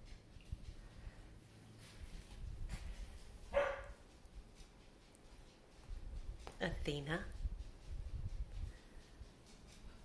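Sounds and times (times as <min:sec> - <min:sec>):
puppy yipping bark: 0:03.5 - 0:04.0.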